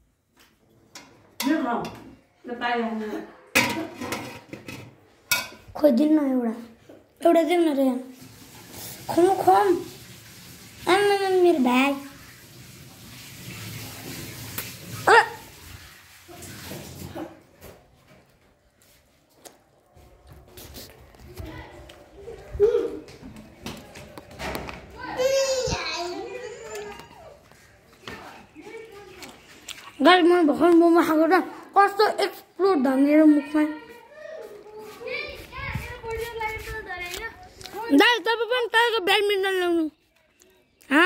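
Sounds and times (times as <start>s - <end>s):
children talking and calling out: 5.8s - 8.2s, 9.0s - 10.0s, 10.8s - 12.2s, 14.9s - 16.6s, 20.6s - 41.0s.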